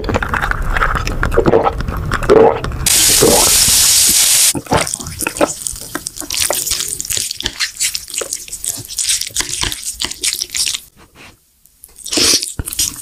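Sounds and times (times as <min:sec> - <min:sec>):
soda pouring hiss: 0:02.9 - 0:04.6.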